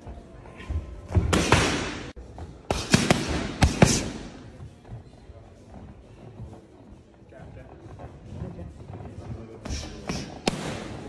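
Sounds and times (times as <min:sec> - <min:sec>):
boxing gloves smacking mitts: 0:01.1 - 0:04.4, 0:09.7 - 0:11.0.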